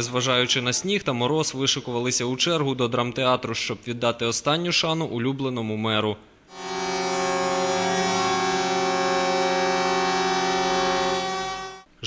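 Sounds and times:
air horn blast: 0:06.5 - 0:11.9.

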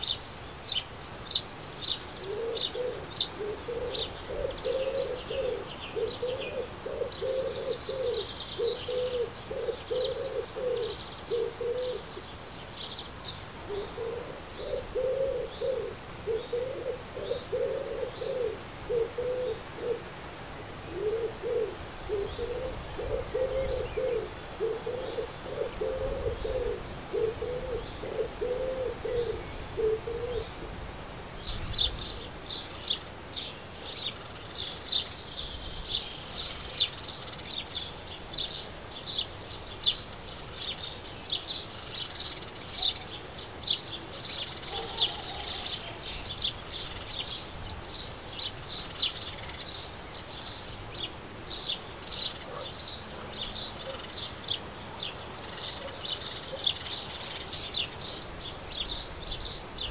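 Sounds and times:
small songbirds chirping: 0:00.0 - 0:59.9
pigeon cooing: 0:02.2 - 0:12.1, 0:13.7 - 0:20.1, 0:20.9 - 0:30.7, 0:44.0 - 0:46.2, 0:52.4 - 0:54.1.

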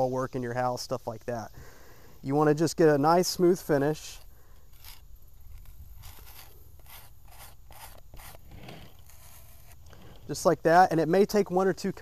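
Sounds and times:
putty knife scraping: 0:04.6 - 0:10.2.

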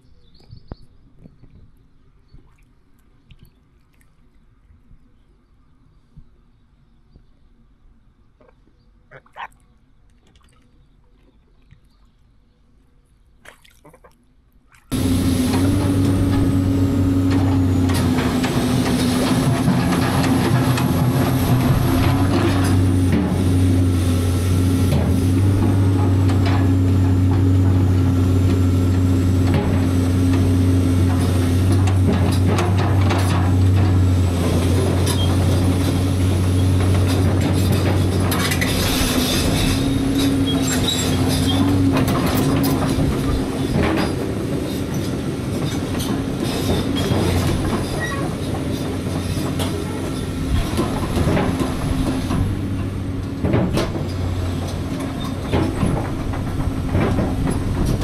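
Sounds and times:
metal clanks and knocks: 0:14.9 - 0:23.7, 0:24.9 - 0:36.1, 0:36.7 - 0:58.0
diesel engine running: 0:14.9 - 0:58.0
hydraulic whine: 0:14.9 - 0:58.0.

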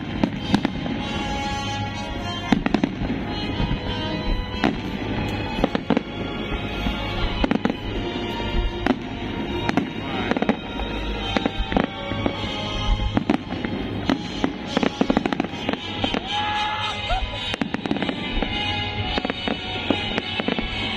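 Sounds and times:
loud music playing: 0:00.0 - 0:20.9.

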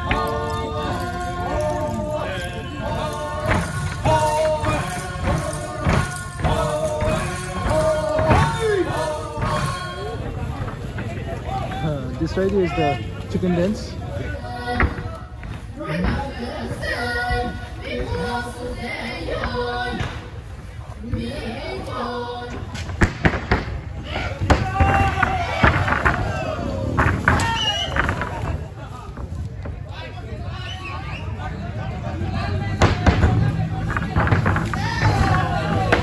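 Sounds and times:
heavy thuds: 0:00.0 - 0:11.8
group singing folk song: 0:00.0 - 0:30.1, 0:32.0 - 0:36.0.

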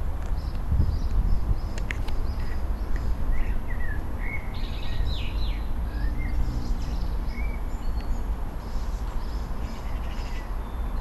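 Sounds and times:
small birds chirping: 0:00.3 - 0:11.0.

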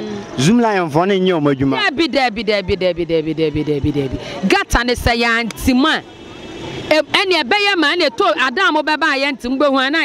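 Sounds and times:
street noise: 0:00.0 - 0:10.0
woman's voice: 0:01.8 - 0:06.0, 0:06.9 - 0:10.0.

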